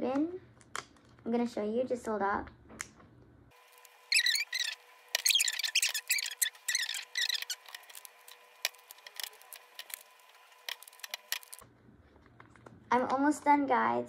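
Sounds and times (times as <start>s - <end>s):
high-pitched squeaks and chirps: 3.7s - 10.1s.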